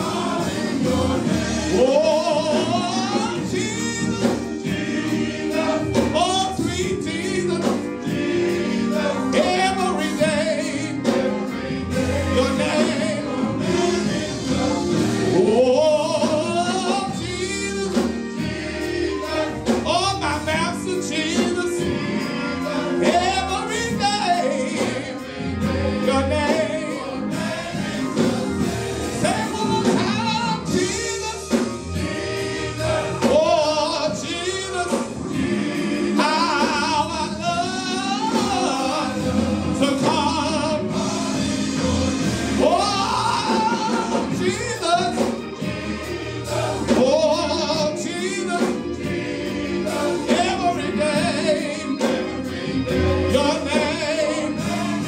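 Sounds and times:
men's group singing gospel: 0.0 - 55.0
musical accompaniment: 0.0 - 55.0.

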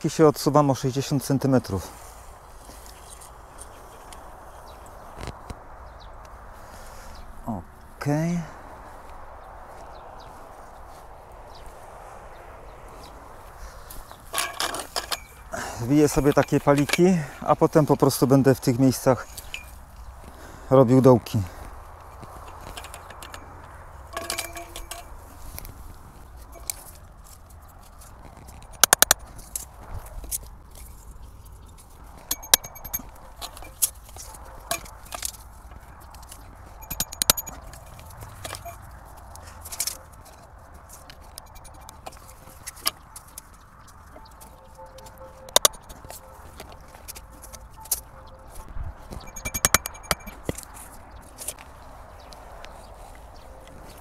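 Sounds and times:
metal stakes clinking: 14.2 - 17.1, 19.4 - 19.8, 22.3 - 25.7, 26.4 - 27.0, 28.4 - 29.7, 32.2 - 35.4, 36.3 - 38.9, 39.6 - 43.0, 44.1 - 48.2, 49.2 - 50.6.

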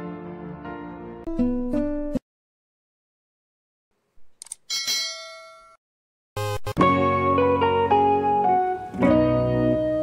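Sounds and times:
ringing bell chime: 4.7 - 5.8
guitar music: 6.4 - 10.0.

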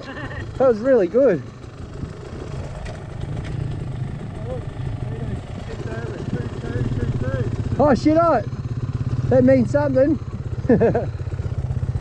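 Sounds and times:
dirt bike engines idling: 0.0 - 12.0.

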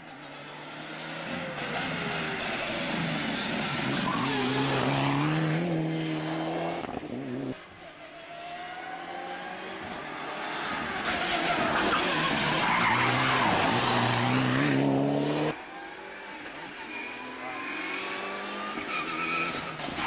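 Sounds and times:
rally car engine at high revs: 0.0 - 7.7, 8.7 - 20.0
distant rally car approaching: 0.1 - 20.0
tyre and road noise: 9.8 - 15.6.

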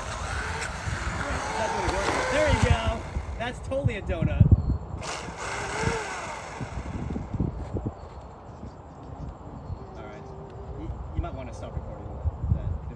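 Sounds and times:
wind rumble on microphone: 0.0 - 12.9.

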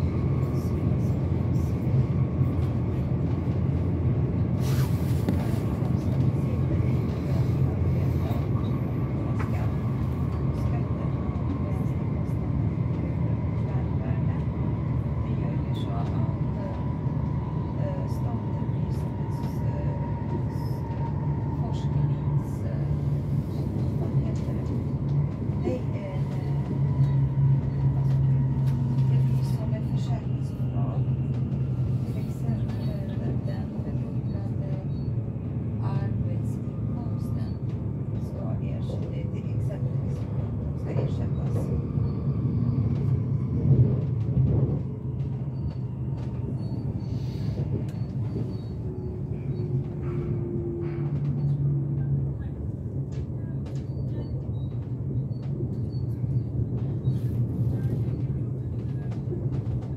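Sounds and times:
train rumbling on rails: 0.0 - 59.9.

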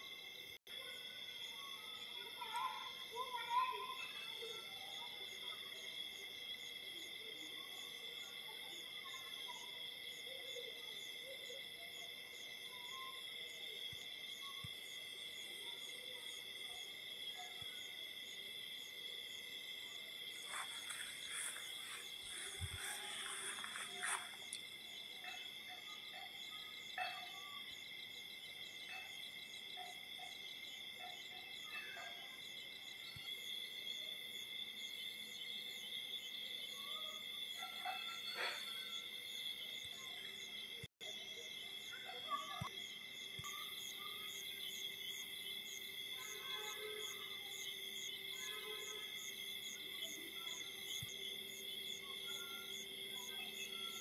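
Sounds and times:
insect chorus drone: 0.0 - 54.0.

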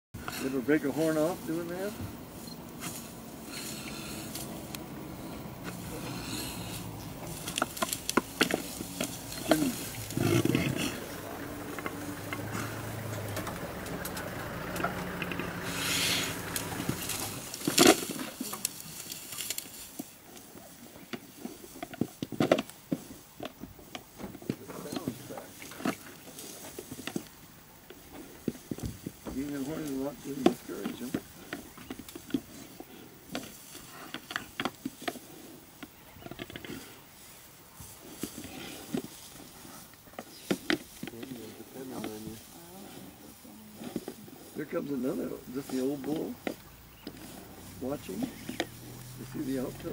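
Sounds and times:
buffalo bellowing and grunting: 0.2 - 19.0, 28.0 - 49.9.

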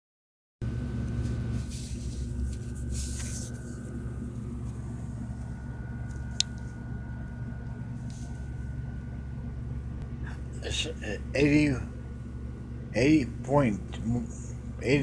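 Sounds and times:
low hum: 0.6 - 15.0
thin high whine: 0.7 - 15.0.

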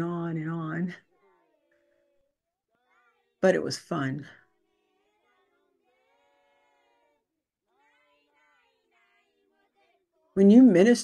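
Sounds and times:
faint distant singing voice: 0.0 - 10.9.

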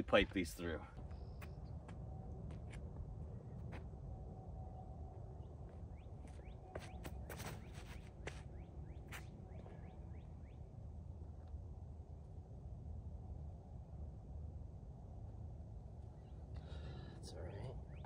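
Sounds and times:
footsteps on concrete: 0.9 - 3.1, 5.7 - 8.5
bird chirps: 5.4 - 10.7.

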